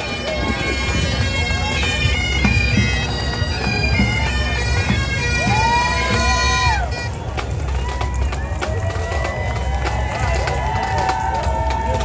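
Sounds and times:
bagpipes playing: 0.0 - 9.2
crowd voices and shouts: 0.0 - 12.0.

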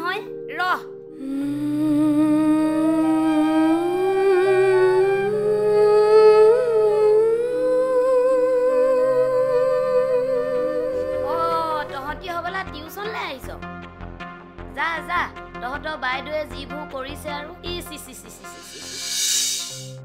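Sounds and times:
person humming a melody: 1.1 - 11.7, 18.5 - 19.9.

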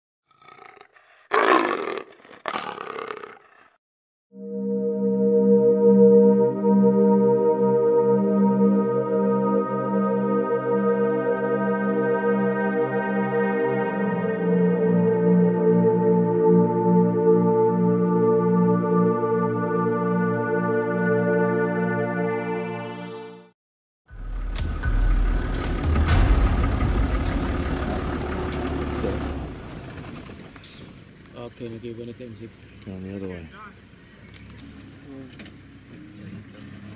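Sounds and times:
leopard rasping roar: 0.3 - 3.8
vehicle engine low rumble: 24.1 - 33.1.

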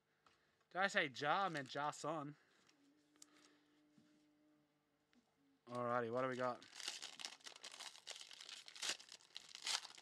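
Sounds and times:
sharp foil crackles: 6.4 - 10.0
foil wrapper crinkling: 6.5 - 10.0.

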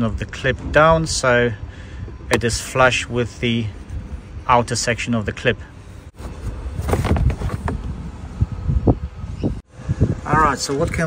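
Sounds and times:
wind rumbling on microphone: 6.3 - 11.0.

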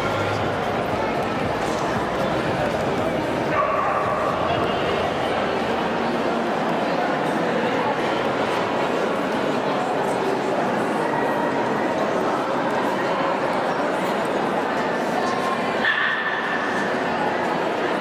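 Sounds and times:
crowd chatter: 0.0 - 18.0.

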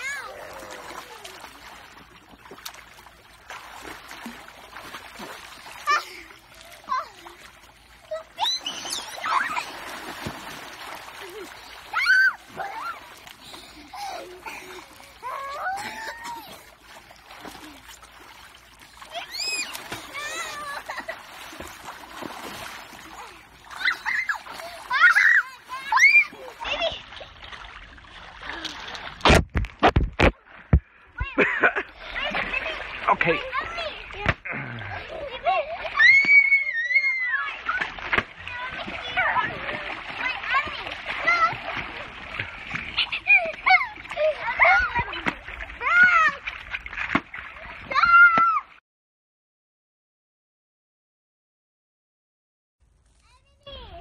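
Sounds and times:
water splashing: 0.0 - 48.7
children squealing: 8.4 - 9.8, 11.9 - 13.1, 19.1 - 21.0, 23.7 - 26.4, 35.9 - 37.9.

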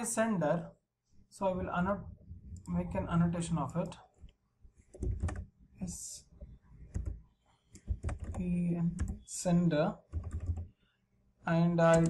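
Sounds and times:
keyboard typing: 4.8 - 5.5, 6.4 - 9.3, 10.0 - 10.7.

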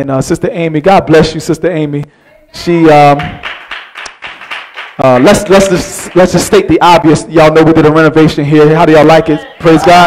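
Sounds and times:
hand claps: 3.1 - 6.5.

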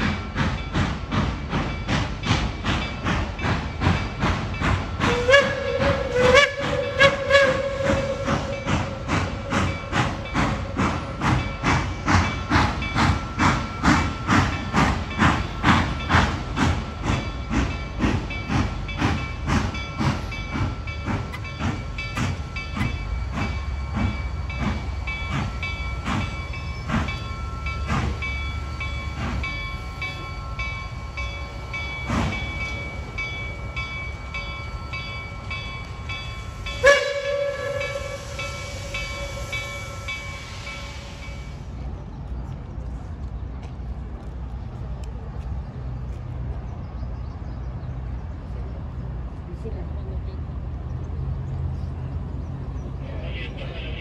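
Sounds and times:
steam locomotive exhaust beats: 0.0 - 54.0
steam whistle blast: 5.0 - 9.7, 36.7 - 41.6.

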